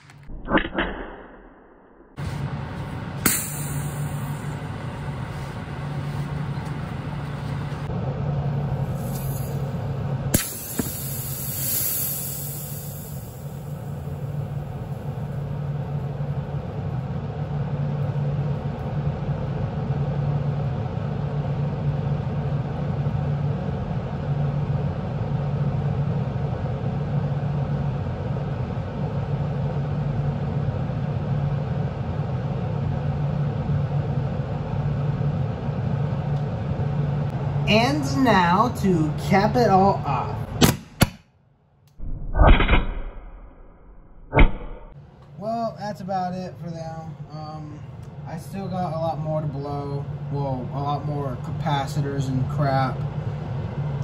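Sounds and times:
low steady hum: 2.2s - 42.4s, 44.9s - 54.0s
capacitor hissing: 2.6s - 7.9s, 8.9s - 13.9s.

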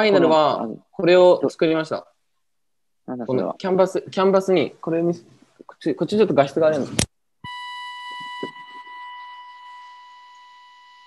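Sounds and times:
steady electronic beep: 7.4s - 11.0s.

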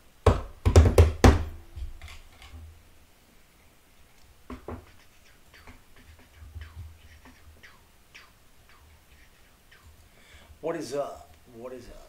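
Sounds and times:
handling thumps and knocks: 0.3s - 2.6s.

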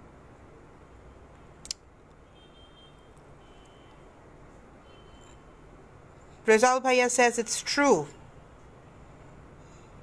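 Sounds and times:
sharp click: 1.6s - 1.8s.

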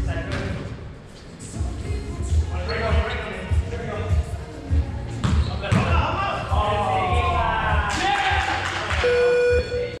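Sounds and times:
electronic buzzer tone: 9.0s - 10.0s.

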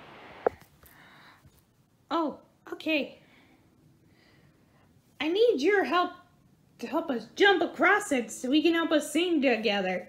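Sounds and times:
soft rustling hiss: 0.0s - 2.1s.

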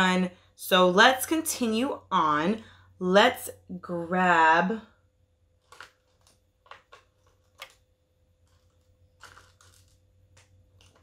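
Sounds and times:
faint steady hum: 0.0s - 11.0s
makeup brushes clicking and rustling: 5.6s - 11.0s.

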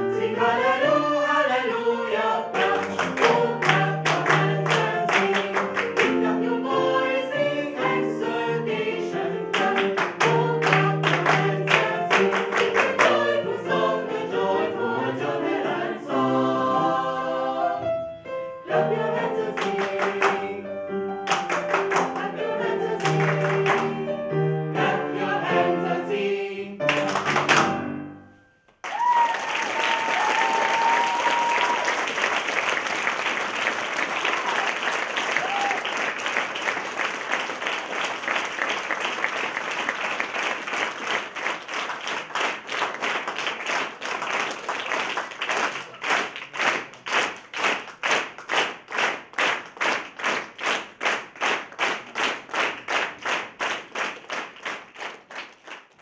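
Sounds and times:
audience applauding: 2.6s - 6.4s, 9.5s - 13.3s, 19.6s - 20.5s, 21.2s - 22.3s, 23.0s - 24.0s, 26.9s - 27.7s, 28.8s - 56.0s
rhythmic unison clapping: 2.6s - 6.6s, 9.5s - 13.9s, 19.0s - 20.6s, 21.2s - 24.0s, 26.9s - 27.8s, 28.8s - 56.0s.

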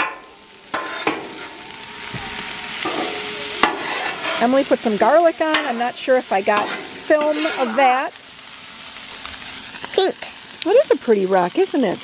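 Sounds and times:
fried rice sizzling on griddle: 0.0s - 12.0s.

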